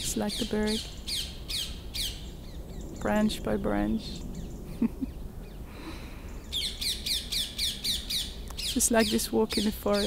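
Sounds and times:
songbird singing: 0.0s - 10.0s.

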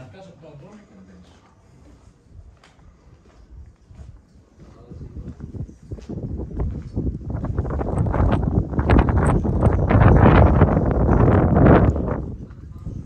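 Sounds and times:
footsteps on stone paving: 0.0s - 9.8s.

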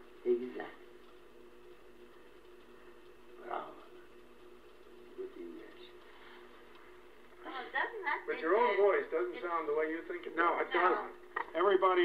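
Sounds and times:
recording hiss and hum: 0.0s - 12.0s.

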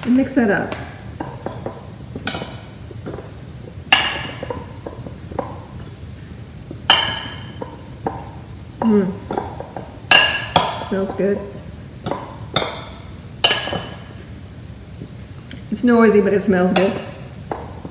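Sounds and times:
potatoes and spoon knocking: 0.0s - 14.2s, 16.2s - 17.9s.

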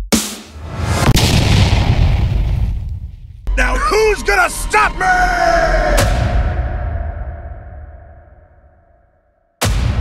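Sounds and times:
heavy cinematic boom hits: 0.8s - 3.4s.

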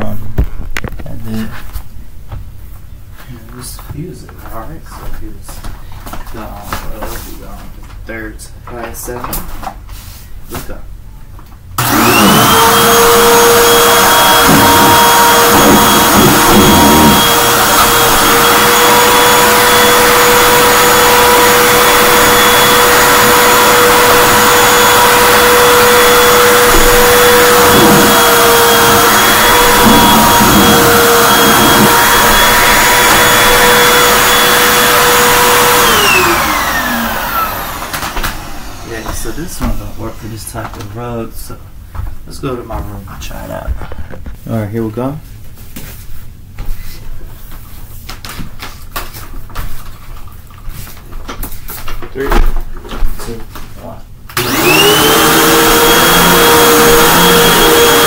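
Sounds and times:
vacuum cleaner motor whining: 11.8s - 40.8s, 54.4s - 58.0s.

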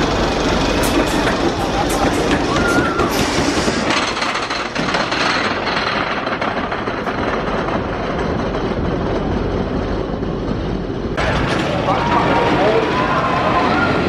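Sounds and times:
roller coaster rumbling on track: 0.0s - 14.0s.

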